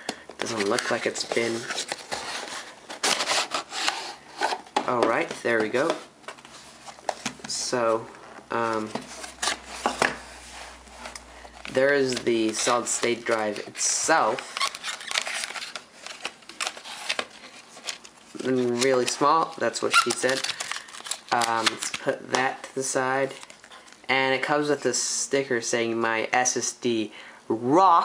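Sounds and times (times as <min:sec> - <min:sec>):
cardboard scraping: 0:00.4 - 0:19.1
plastic bag crinkling: 0:11.0 - 0:22.1.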